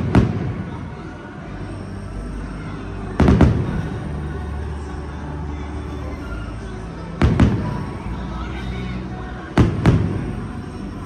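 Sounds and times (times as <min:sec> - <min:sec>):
firework bangs: 0:00.0 - 0:01.0
music playing: 0:00.0 - 0:11.0.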